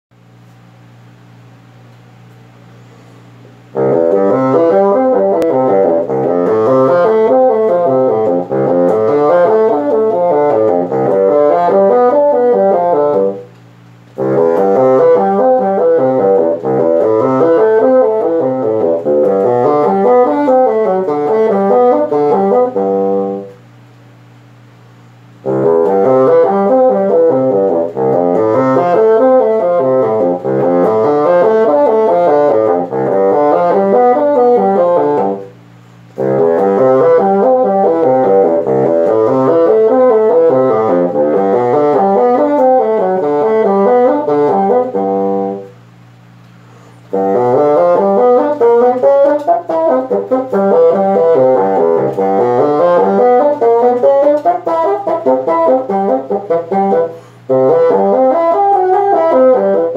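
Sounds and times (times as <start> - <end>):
solo bassoon playing: 3.7 - 13.5, 14.2 - 23.6, 25.4 - 35.6, 36.2 - 45.8, 47.1 - 59.9.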